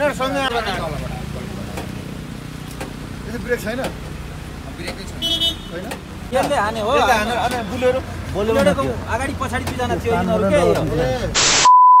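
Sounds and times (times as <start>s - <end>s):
vehicle horn toot: 5.2s - 5.7s.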